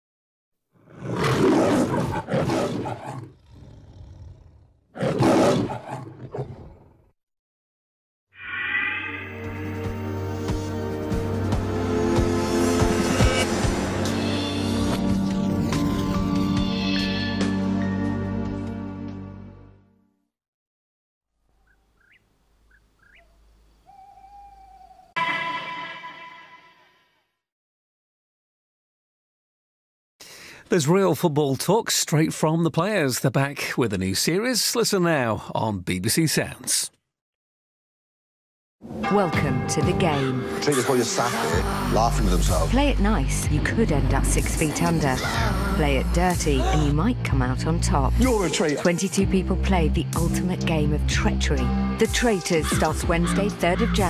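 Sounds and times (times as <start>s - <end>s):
lion roaring: 0.8s - 7.0s
whistle-like rising notes: 8.4s - 10.3s.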